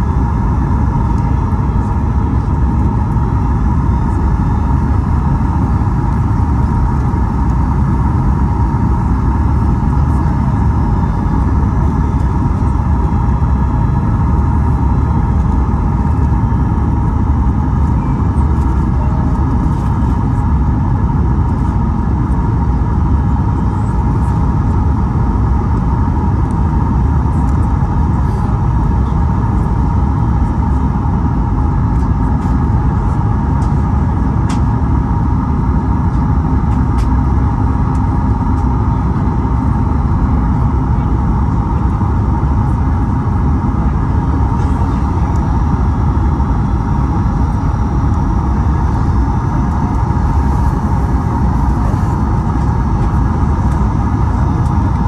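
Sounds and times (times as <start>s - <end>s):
deep rumble of engine and airflow: 0.0s - 55.0s
steady engine whine: 0.0s - 55.0s.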